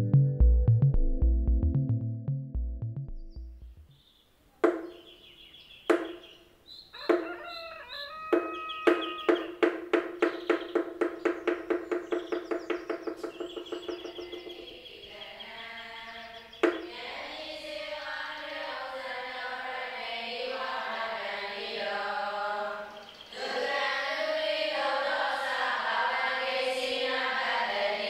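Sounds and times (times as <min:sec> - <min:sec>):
birds calling: 0:03.8 - 0:18.1, 0:22.6 - 0:23.6
voices chanting: 0:07.0 - 0:09.7, 0:13.3 - 0:28.0.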